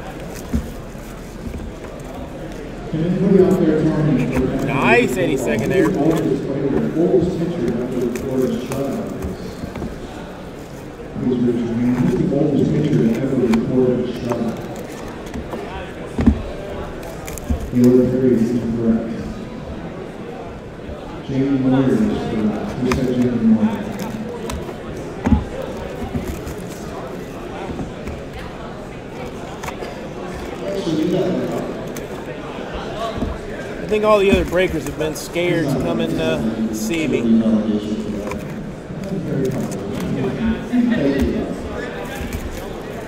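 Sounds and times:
hall background noise: 0.0s - 43.0s
man's voice: 2.9s - 9.2s, 33.9s - 38.3s.

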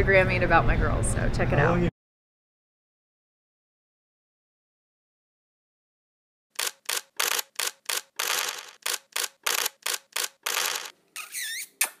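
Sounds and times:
sharp click: 6.6s - 10.9s
squeaky whistle: 11.2s - 12.0s.

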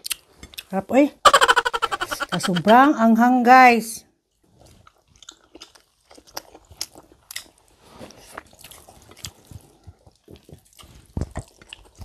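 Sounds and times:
chewing and biting: 4.4s - 12.0s.

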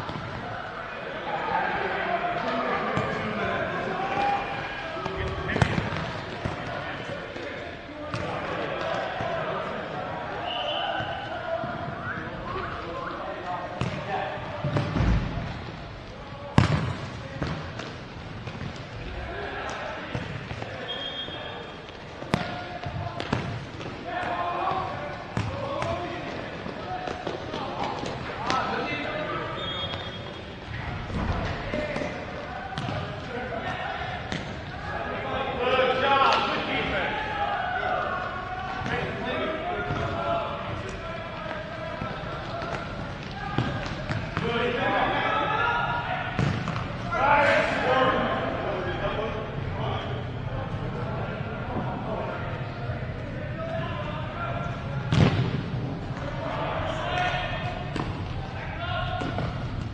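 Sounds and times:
players shouting and chatting: 0.0s - 59.9s
ball kicked on hard court: 13.8s - 14.0s.

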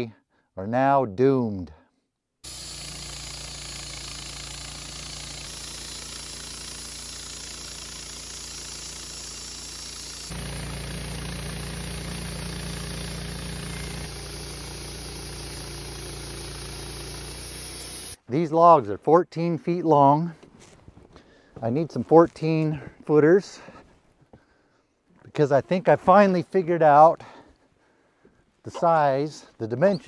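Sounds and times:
bandsaw mill sawing a log: 2.4s - 18.2s, 29.8s - 30.0s.

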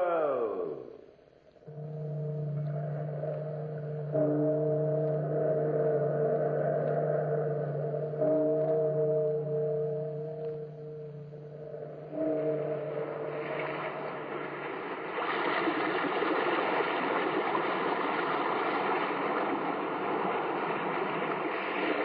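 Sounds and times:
sea surf: 12.0s - 22.0s.

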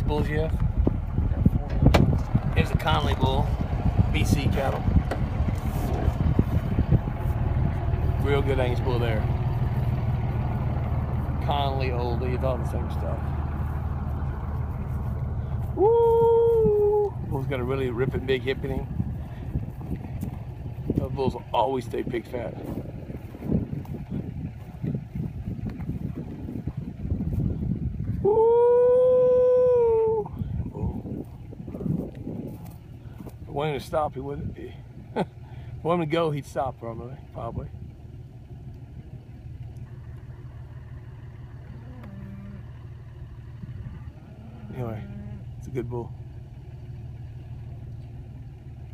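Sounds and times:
low rumble: 0.0s - 48.9s
vehicle engine idling: 0.0s - 48.9s
animal howling call: 15.7s - 17.2s, 28.2s - 30.4s, 41.6s - 42.8s.

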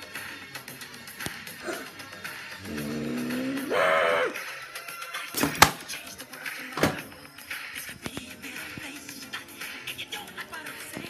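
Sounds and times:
background music: 0.0s - 11.0s
drawn-out vocal cry: 1.6s - 4.6s.

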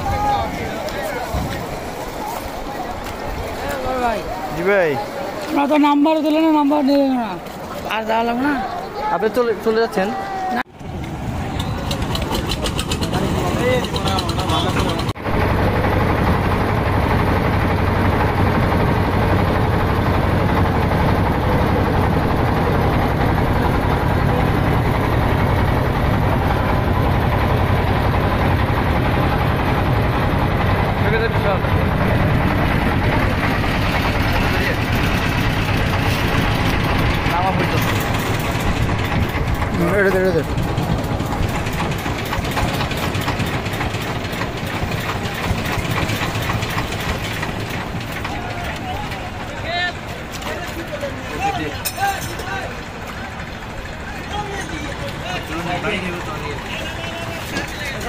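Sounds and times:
boat engine running: 0.0s - 10.1s, 10.7s - 58.0s
voices: 0.0s - 15.2s, 16.1s - 58.0s.

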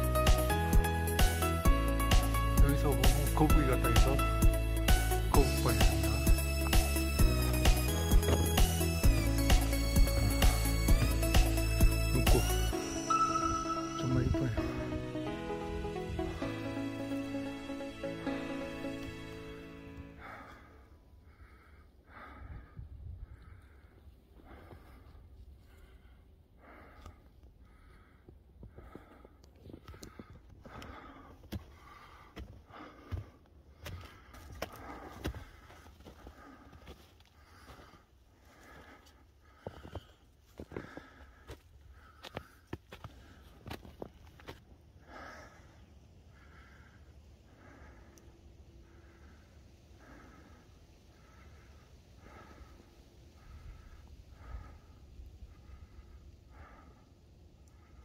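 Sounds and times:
footsteps crunching in snow: 5.4s - 12.5s, 32.4s - 44.6s.

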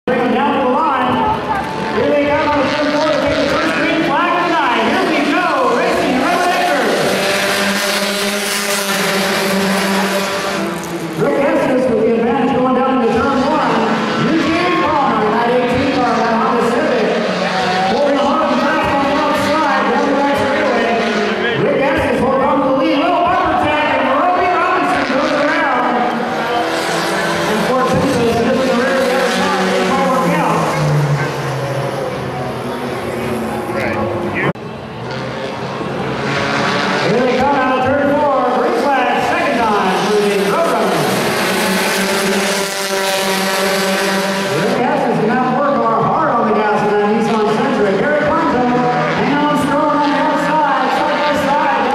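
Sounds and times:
race car engines revving: 0.0s - 51.9s.

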